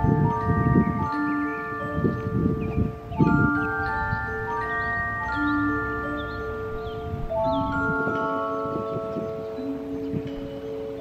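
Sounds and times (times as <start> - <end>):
gentle bell-like mallet melody: 0.0 - 11.0.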